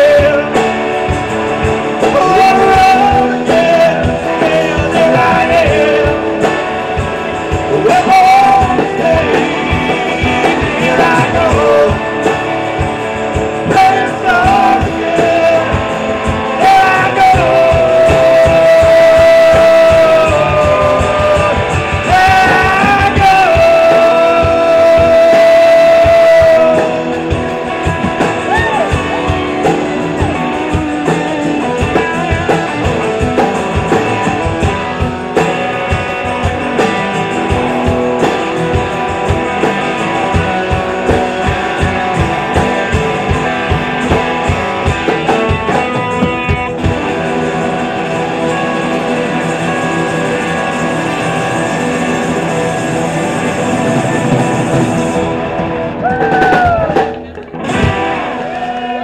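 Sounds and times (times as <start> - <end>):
drum beat: 0.0 - 59.0
guitars: 0.0 - 59.0.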